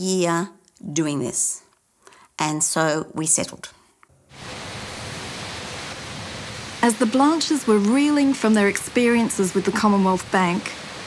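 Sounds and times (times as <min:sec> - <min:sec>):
rain on a wet street: 0:04.3 - 0:11.0.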